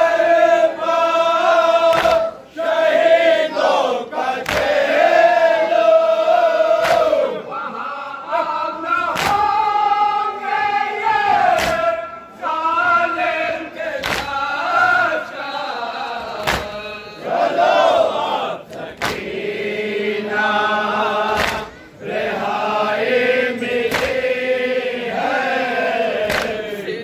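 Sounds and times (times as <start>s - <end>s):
men chanting a lament: 0.0s - 27.0s
chest-beating slaps: 1.9s - 2.3s, 4.4s - 4.8s, 6.8s - 7.2s, 9.1s - 9.6s, 11.4s - 12.0s, 14.0s - 14.5s, 16.3s - 16.9s, 18.7s - 19.4s, 21.3s - 21.8s, 23.8s - 24.3s, 26.2s - 26.6s.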